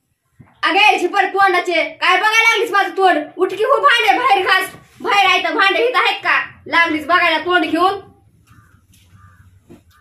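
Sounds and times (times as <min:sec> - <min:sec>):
short bird calls: 0:08.4 - 0:10.0.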